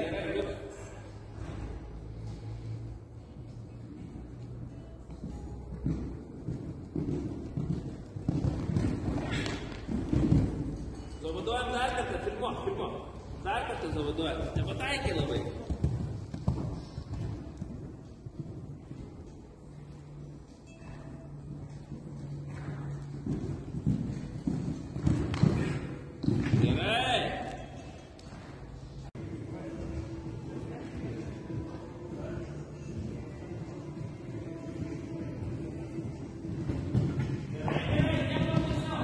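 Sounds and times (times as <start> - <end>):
horse hoofbeats on soft ground: 1.4 - 11.6, 13.1 - 26.8, 29.2 - 39.0.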